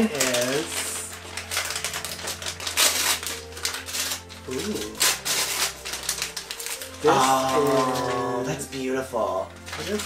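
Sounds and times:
wrapping paper tearing: 0.0 - 10.0.

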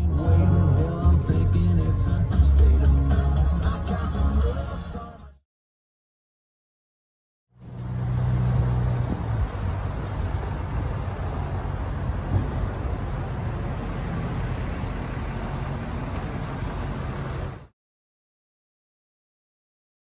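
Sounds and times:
low engine hum: 0.0 - 5.0, 7.6 - 17.7
cars and trucks running: 0.0 - 5.4, 7.5 - 17.7.

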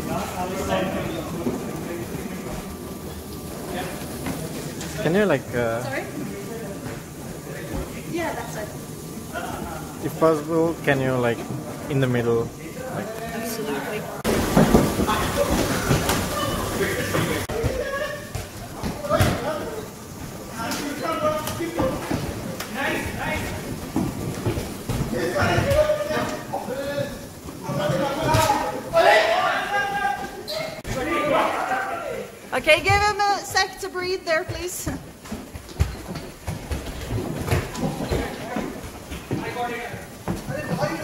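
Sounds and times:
men shouting: 25.2 - 32.4.

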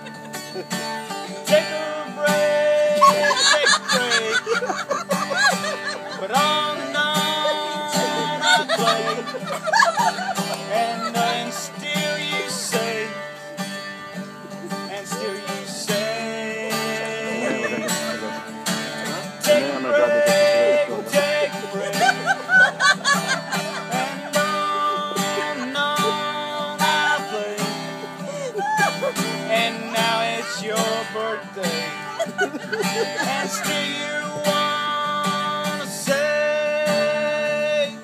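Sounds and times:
acoustic guitar picked and strummed: 0.0 - 38.0
voices: 1.3 - 13.3, 14.1 - 36.5.

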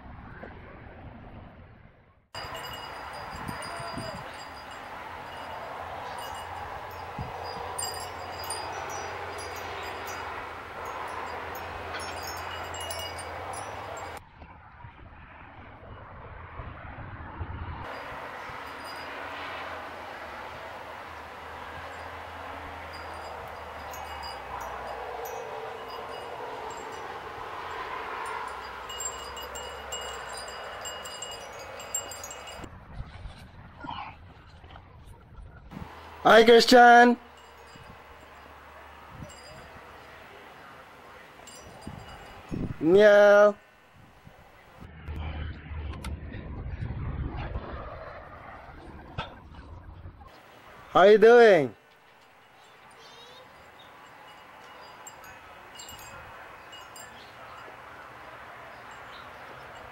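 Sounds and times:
light chimes ringing: 2.4 - 14.2, 17.9 - 32.7, 35.7 - 44.9, 50.3 - 59.9
steady background noise: 35.7 - 46.3, 49.3 - 59.9.

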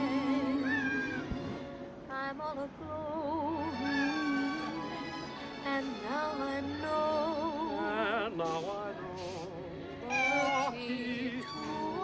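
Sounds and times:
woman singing romantic song: 0.0 - 12.0
cat meowing: 0.6 - 1.4, 10.1 - 12.0.

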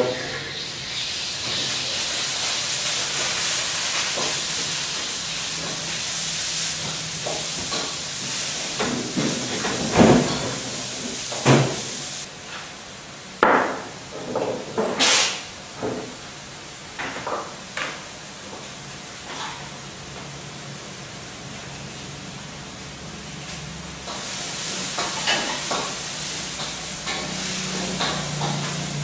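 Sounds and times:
food sizzling in a pan: 0.1 - 12.3, 15.0 - 29.0.

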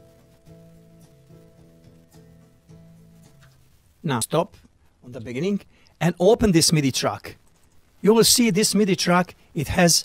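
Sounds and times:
faint keyboard accompaniment music: 0.0 - 10.0.

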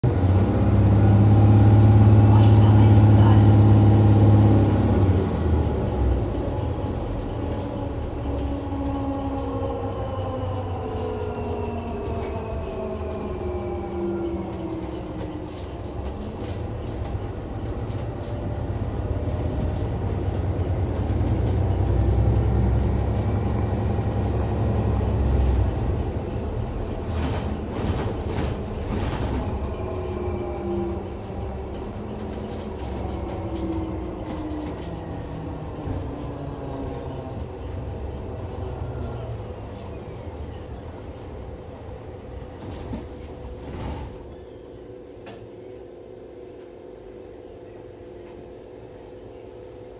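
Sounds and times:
bus interior low drone: 0.0 - 49.9.

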